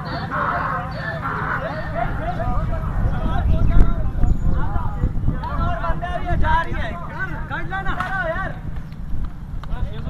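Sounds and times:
people talking and calling out: 0:00.0 - 0:10.0
steady low rumble: 0:00.0 - 0:10.0.

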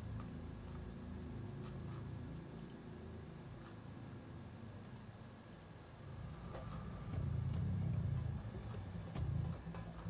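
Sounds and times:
computer mouse clicks: 0:01.6 - 0:02.8, 0:04.8 - 0:05.8
low uneven rumble: 0:06.0 - 0:10.0.

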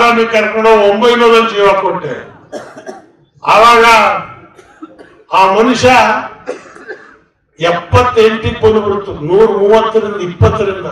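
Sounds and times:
man speaking into a microphone: 0:00.0 - 0:02.6, 0:03.3 - 0:06.6, 0:07.6 - 0:10.9.

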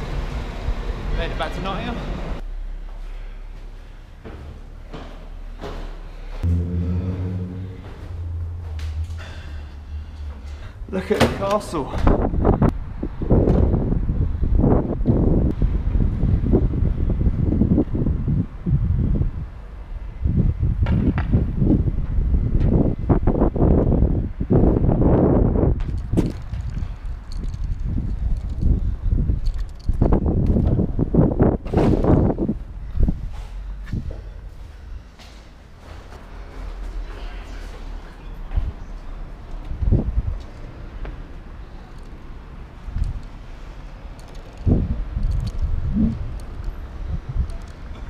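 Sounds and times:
walking knocks: 0:04.2 - 0:09.3
wind buffeting microphone: 0:11.9 - 0:34.1, 0:39.7 - 0:41.0, 0:42.8 - 0:48.0.

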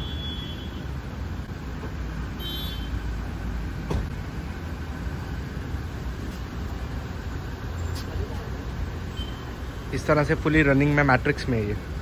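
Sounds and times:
motor vehicle rumble: 0:00.0 - 0:12.0.

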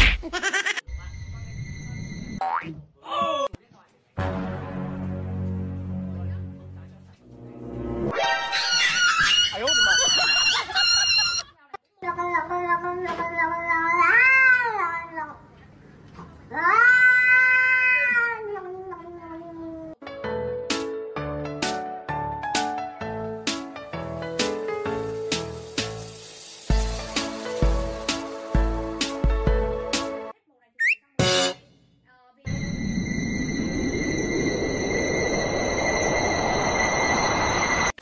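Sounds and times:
rising cartoon boing: 0:02.4 - 0:02.8
cat meowing: 0:16.5 - 0:18.7
light plucked music: 0:23.5 - 0:30.3
low rumble: 0:32.5 - 0:38.0.

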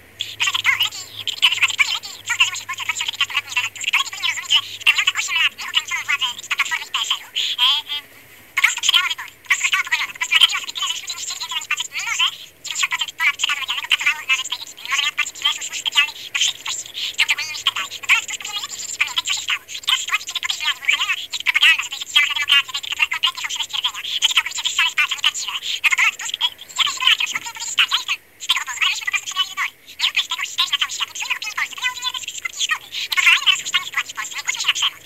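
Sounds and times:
high-pitched voice chattering: 0:00.2 - 0:35.0.

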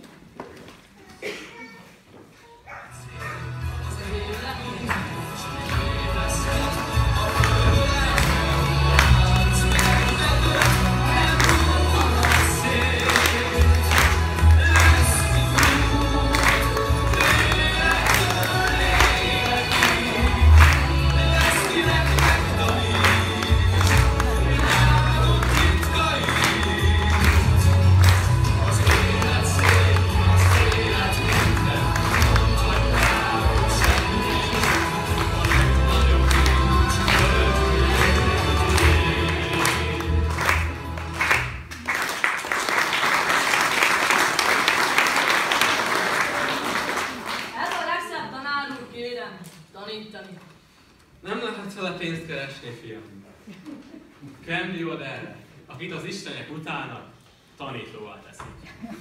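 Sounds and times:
music with steady beat and bass: 0:03.5 - 0:41.2
young men singing together: 0:03.7 - 0:40.7
audience applauding: 0:04.4 - 0:48.2.

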